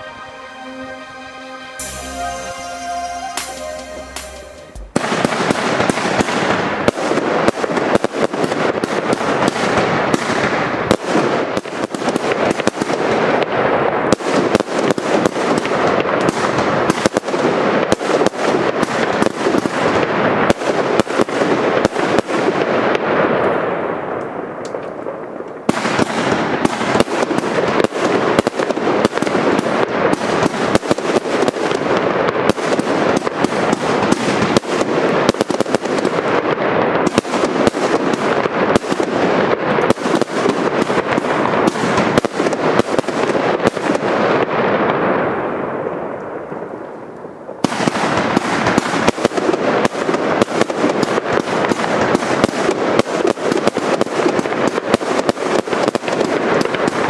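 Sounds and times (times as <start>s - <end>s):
firework pops and crackling: 3.4s - 57.0s.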